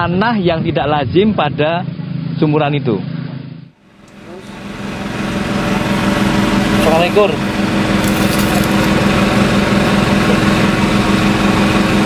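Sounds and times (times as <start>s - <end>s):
small engine running: 3.8s - 12.0s.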